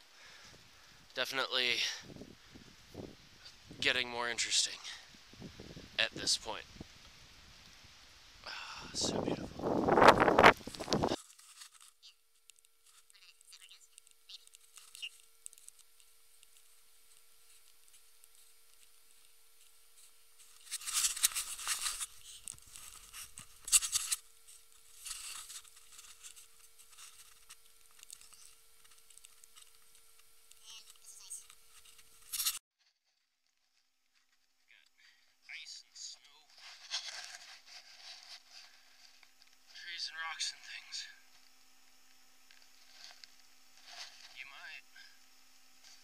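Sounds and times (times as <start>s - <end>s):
faint crackle: 9.6s - 35.4s, 40.6s - 45.2s.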